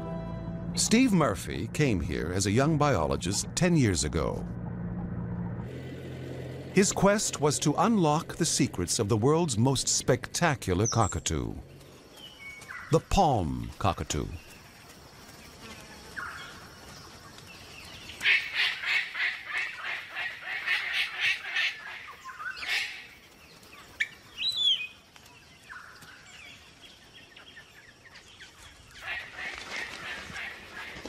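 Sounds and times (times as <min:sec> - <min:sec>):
cockatoos honking calls: 0:18.1 - 0:23.3, 0:28.9 - 0:31.0.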